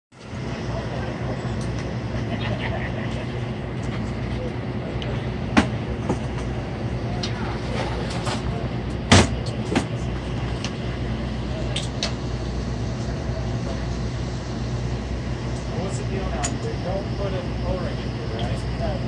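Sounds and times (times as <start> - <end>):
low mechanical hum: 0.2 - 19.0.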